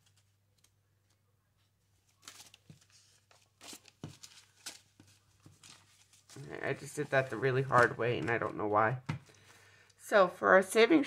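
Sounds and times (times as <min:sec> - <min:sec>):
banknotes rustling and flicking: 0:01.8 - 0:08.7.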